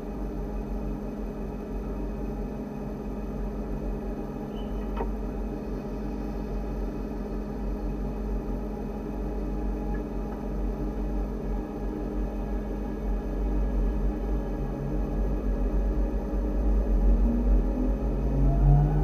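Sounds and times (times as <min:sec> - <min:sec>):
electric train equipment rumble: 0:00.0 - 0:19.0
electrical hum with held tones: 0:00.0 - 0:19.0.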